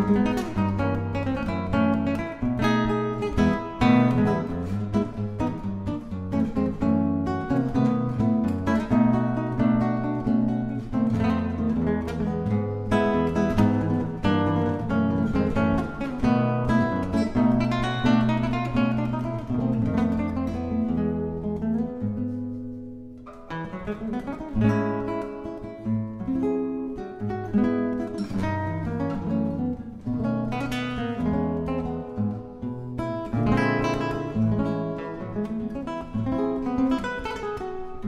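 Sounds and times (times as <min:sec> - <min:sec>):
fingerpicked classical guitar tango: 0:00.0 - 0:38.0.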